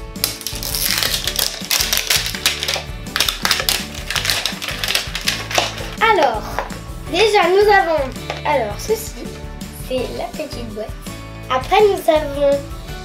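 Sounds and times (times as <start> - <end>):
paper wrapper tearing: 0.0 - 6.2
background music: 0.0 - 13.0.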